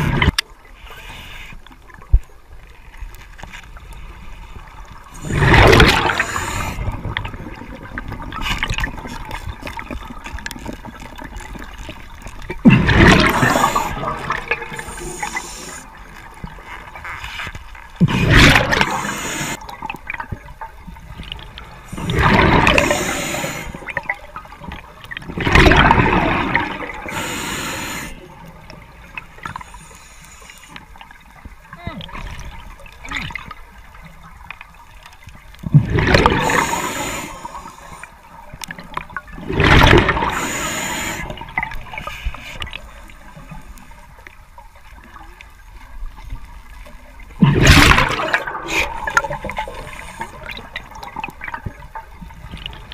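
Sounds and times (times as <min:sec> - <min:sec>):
diver exhaling bubbles underwater: 0:05.2 - 0:09.2, 0:12.5 - 0:15.8, 0:18.0 - 0:19.8, 0:21.9 - 0:24.2, 0:25.3 - 0:28.2, 0:35.7 - 0:37.7, 0:39.4 - 0:42.1, 0:47.4 - 0:51.7.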